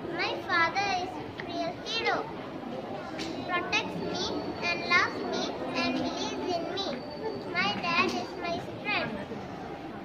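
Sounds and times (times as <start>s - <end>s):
murmur of lower voices: 0.0s - 10.0s
young children calling: 3.4s - 9.1s.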